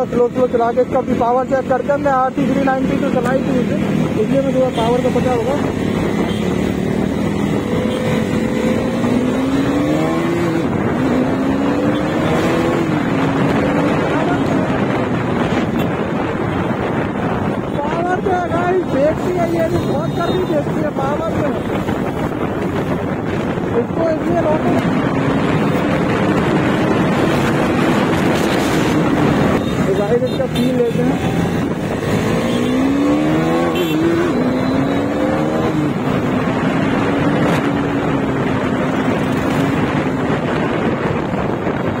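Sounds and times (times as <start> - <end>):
motorcycle engine revving: 0.0 - 42.0.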